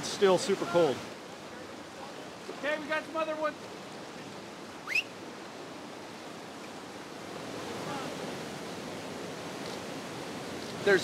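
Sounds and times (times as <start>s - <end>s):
river water rushing: 0.0s - 11.0s
sharp rising whistle: 4.8s - 5.1s.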